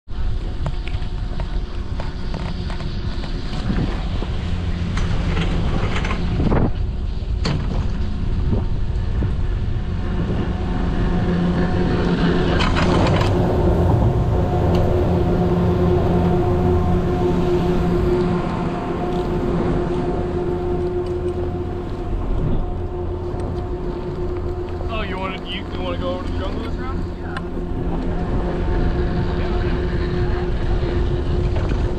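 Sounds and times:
chairlift machinery hum: 0:00.1 - 0:31.9.

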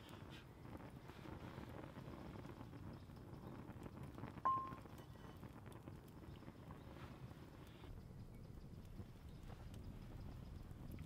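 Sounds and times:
wood fire crackling: 0:00.0 - 0:11.0.

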